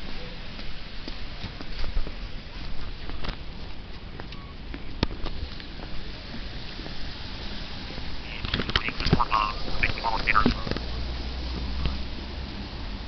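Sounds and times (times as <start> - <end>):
street ambience: 0.0 - 13.0
quack-like pitched calls: 8.3 - 10.7.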